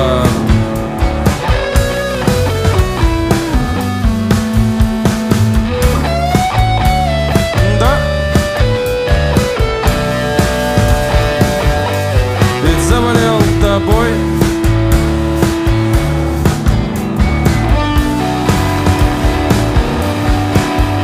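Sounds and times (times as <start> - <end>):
bass guitar: 0.0 - 21.0
electric guitar with sliding notes: 0.0 - 21.0
steady drum beat: 0.0 - 21.0.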